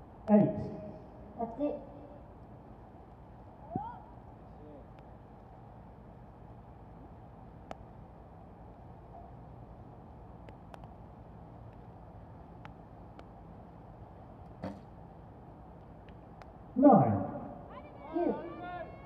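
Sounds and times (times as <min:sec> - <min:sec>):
quiet outdoor background: 0:00.0 - 0:19.0.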